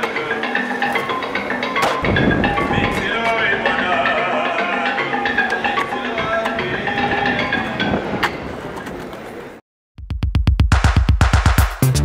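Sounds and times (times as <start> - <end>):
outdoor noise: 0.0 - 9.6.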